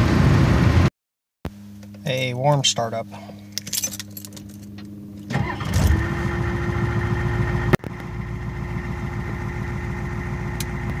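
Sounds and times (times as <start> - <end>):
constant whine: 1.5 - 11.0
diesel engine starting and idling: 5.2 - 11.0.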